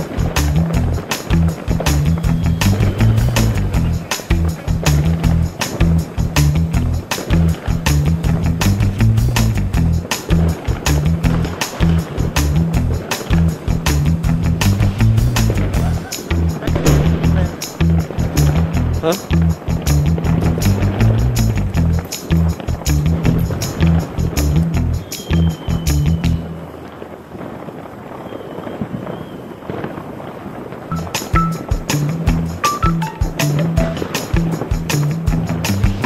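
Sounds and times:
music with heavy bass: 0.0 - 26.5, 30.9 - 36.0.

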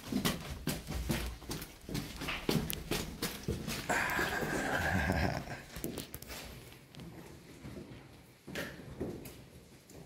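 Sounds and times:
footsteps on walkway: 0.0 - 10.0.

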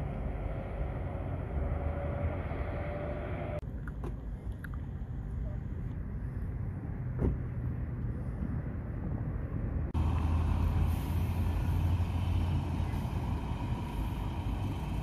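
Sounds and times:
low engine hum: 0.0 - 15.0
road vehicle engine: 0.0 - 15.0.

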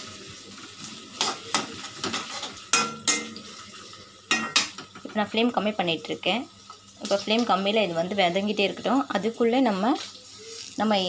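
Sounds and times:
onions sizzling in oil: 0.0 - 11.0
spatula scraping a pan: 1.1 - 3.6.

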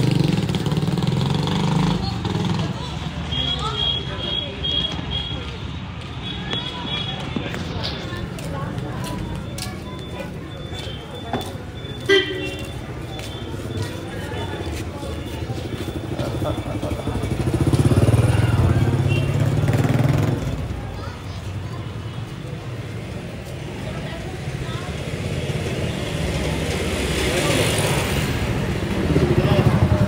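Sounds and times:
motorbike engine passing: 0.0 - 3.2, 13.5 - 21.4, 22.8 - 30.0
background chatter: 0.0 - 30.0.

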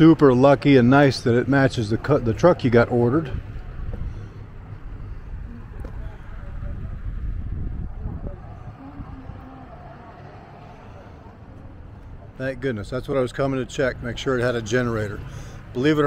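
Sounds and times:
low outdoor background rumble: 0.0 - 16.0.

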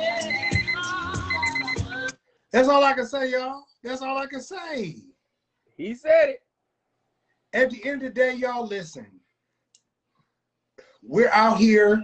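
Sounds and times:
man speaking: 2.6 - 5.1, 5.8 - 6.4, 7.6 - 9.2, 11.0 - 12.0.

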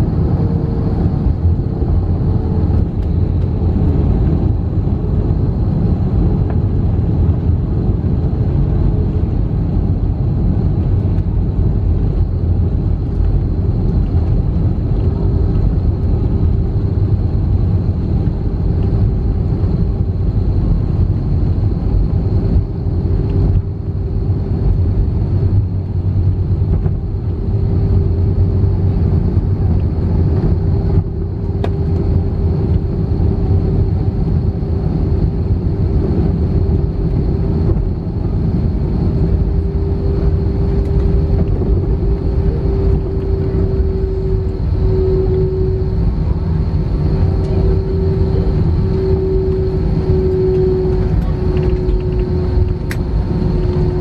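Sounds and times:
steady engine tone: 0.0 - 54.0
wheels rumbling on runway: 0.0 - 54.0.

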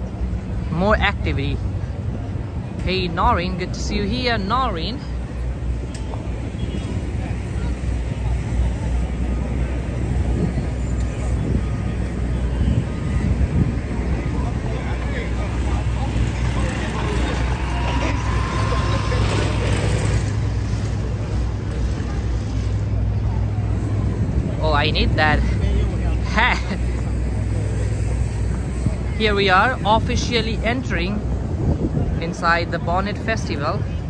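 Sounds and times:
people talking in crowd: 0.0 - 34.0
traffic rumble: 0.0 - 34.0
vehicle passing close: 12.9 - 22.2.

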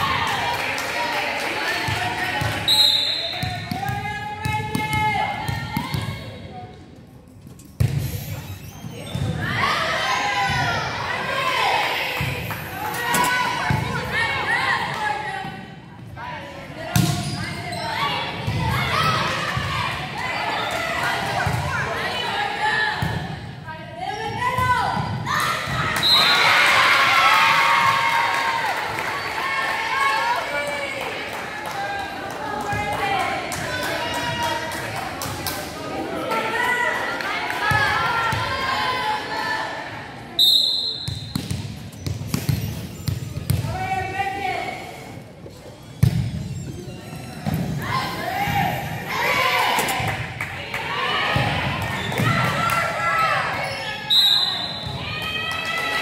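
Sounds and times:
players and spectators shouting: 47.8 - 56.0.

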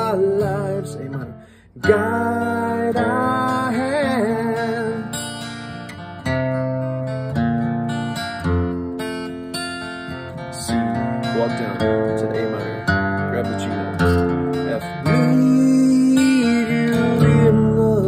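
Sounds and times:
acoustic guitar chords: 0.0 - 18.0.

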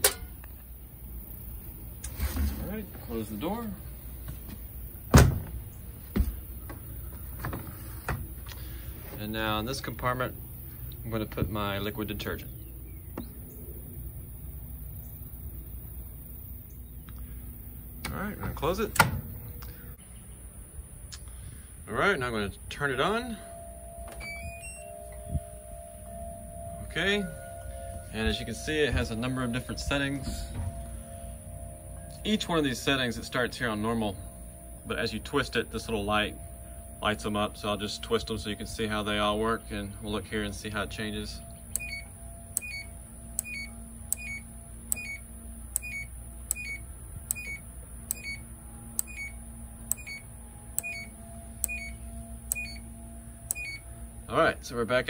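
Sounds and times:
low thump: 5.1 - 6.4, 29.9 - 31.5
washer power-on chime: 22.8 - 48.4, 49.0 - 55.0
washer control panel beeps: 23.6 - 25.4, 41.7 - 45.2, 45.8 - 48.4, 49.0 - 52.8, 53.5 - 53.8
selector dial clicking: 41.7 - 48.4, 49.0 - 52.8.

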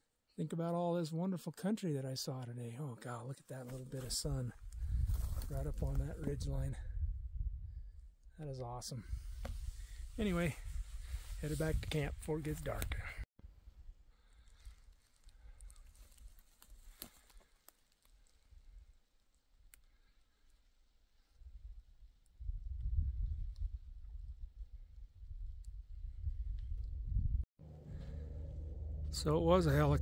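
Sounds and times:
distant helicopter rotor rumble: 27.6 - 30.0.

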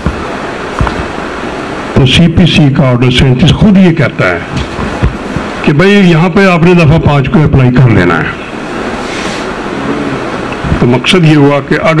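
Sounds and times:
room noise and hiss: 0.0 - 12.0
faint low knocks: 4.5 - 5.5.

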